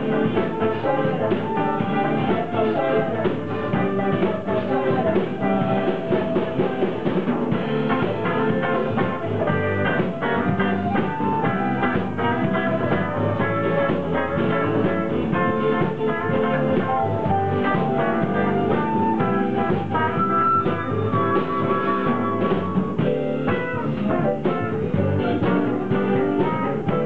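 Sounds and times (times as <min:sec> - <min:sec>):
flute: 0:00.0 - 0:27.0
indie pop band playing: 0:00.0 - 0:27.0.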